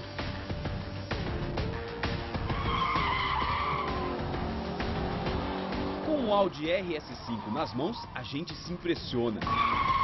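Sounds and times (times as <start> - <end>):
background music: 0.0 - 10.0
car engine running: 0.0 - 10.0
tyres squealing: 2.4 - 4.3, 5.4 - 10.0.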